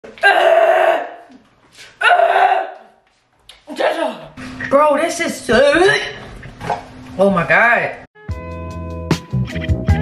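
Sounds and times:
person crying out in pain: 0.2s - 1.2s, 2.0s - 2.8s.

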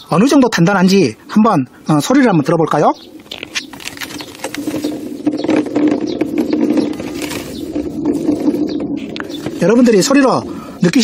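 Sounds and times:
berries clicking in plastic crate: 3.2s - 9.8s.

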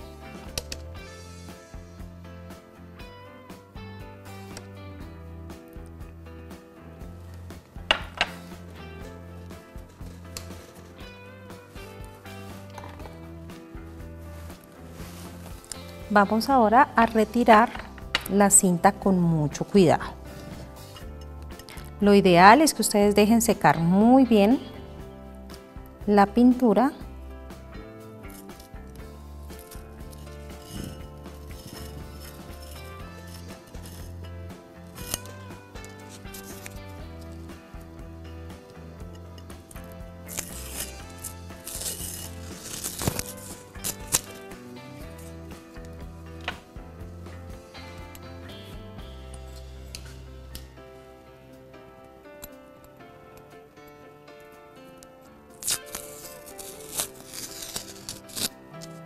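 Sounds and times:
instrumental music: 0.0s - 59.0s
masking tape peeling off glass: 39.8s - 45.9s, 55.5s - 59.0s.

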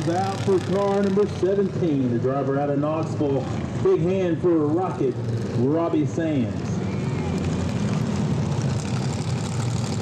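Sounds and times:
race car engine droning: 0.0s - 10.0s.

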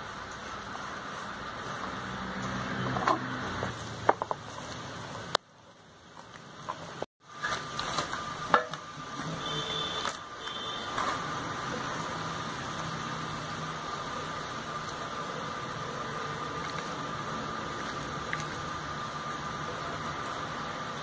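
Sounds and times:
machine hum with whine: 7.2s - 21.0s.

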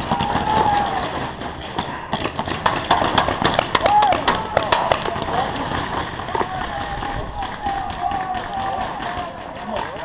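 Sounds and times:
distant voices shouting: 0.0s - 1.5s, 3.7s - 10.0s
paintball markers firing: 0.0s - 10.0s.

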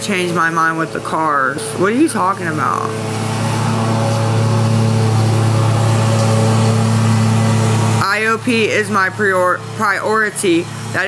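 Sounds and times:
loud low-pitched hum: 0.0s - 11.0s.

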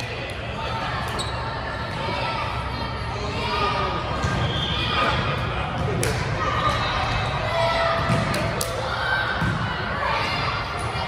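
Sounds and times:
ball bouncing on court: 7.8s - 9.7s.

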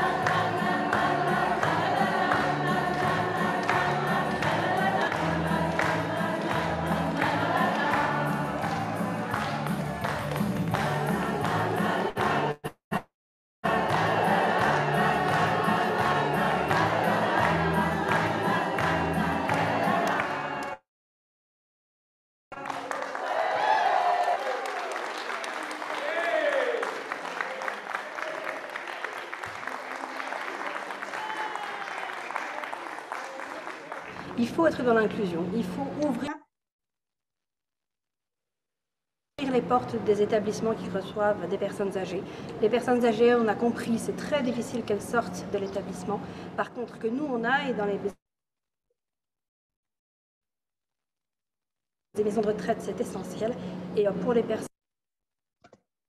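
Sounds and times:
mixed choir singing: 0.0s - 12.6s, 13.6s - 20.8s.

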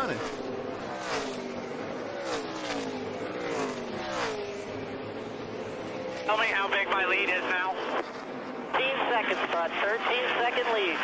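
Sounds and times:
race car engines passing: 0.0s - 11.0s.

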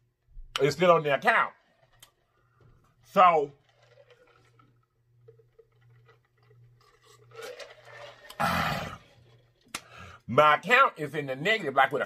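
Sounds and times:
drinking from plastic pitcher: 1.3s - 10.3s
rough throat sound: 8.3s - 9.3s.

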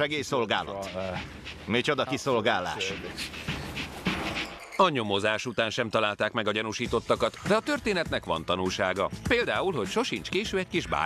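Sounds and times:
dog panting: 0.3s - 4.6s.

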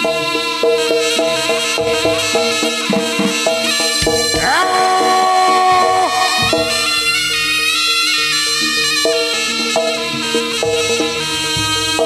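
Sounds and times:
drum strokes: 0.0s - 12.0s
reedy shawm melody: 0.0s - 12.0s.

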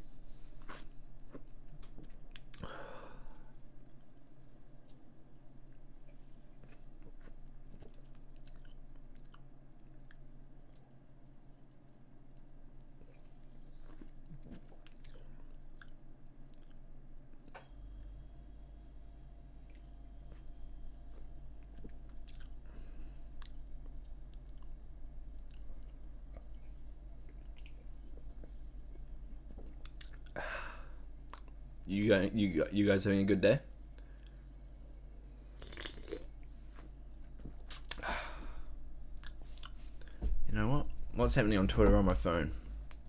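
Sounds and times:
steady low hum: 0.0s - 43.0s
wet mouth clicks: 29.8s - 30.3s, 37.7s - 38.0s
person sipping and swallowing: 35.5s - 38.6s
sipping and swallowing: 35.6s - 36.4s.

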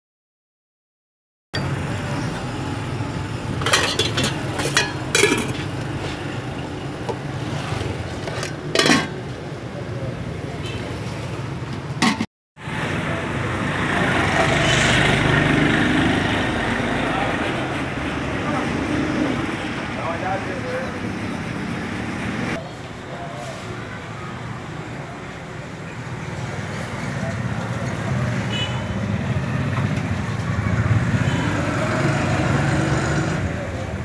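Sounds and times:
passing traffic: 1.6s - 34.0s
plates or utensils clinking: 3.6s - 5.7s, 8.2s - 9.2s.

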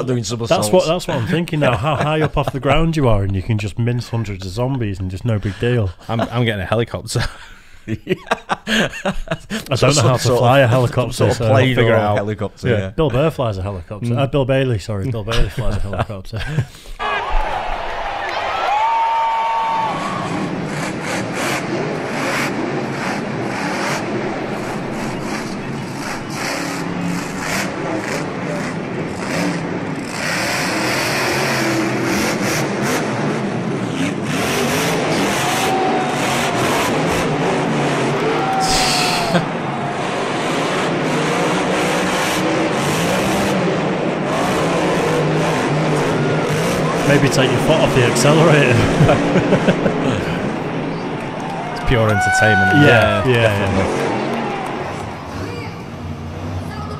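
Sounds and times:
monster truck engines revving: 0.0s - 6.5s, 9.5s - 13.4s, 17.0s - 56.9s.

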